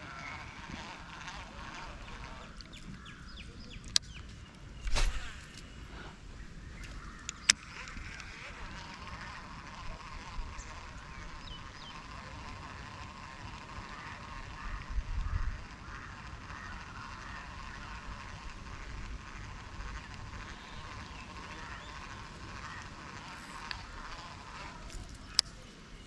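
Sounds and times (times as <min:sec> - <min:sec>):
birds calling: 0:00.0 - 0:26.0.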